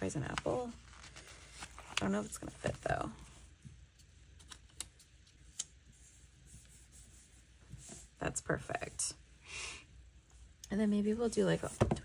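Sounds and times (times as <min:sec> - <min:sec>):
faint paper handling: 0:00.0 - 0:03.6.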